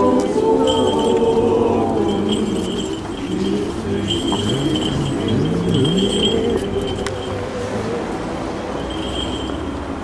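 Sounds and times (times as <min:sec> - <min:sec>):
men's voices chanting: 0:00.0 - 0:08.7
crowd noise: 0:00.0 - 0:10.0.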